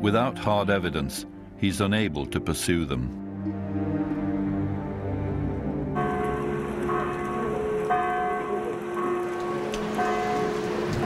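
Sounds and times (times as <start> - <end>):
bells ringing: 5.9 - 11.0.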